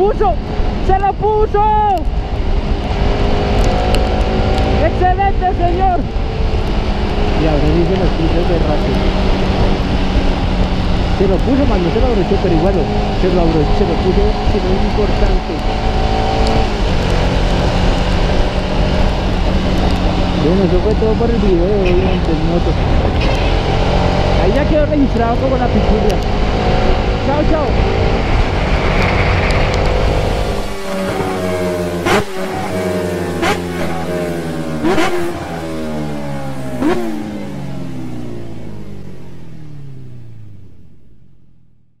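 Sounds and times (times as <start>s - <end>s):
wind rush and road noise: 0.0s - 41.9s
motorcycle engine cruising: 0.0s - 42.0s.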